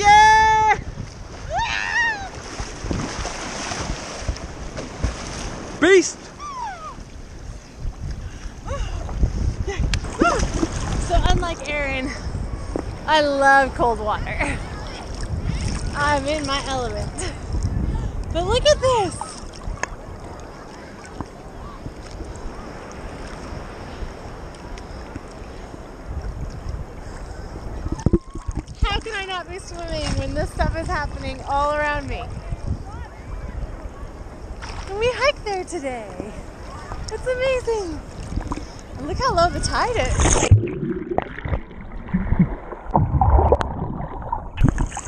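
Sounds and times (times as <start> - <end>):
water sloshing and lapping: 0.0 - 33.2, 34.4 - 45.0
sea surf: 0.0 - 45.0
wind buffeting microphone: 0.0 - 45.0.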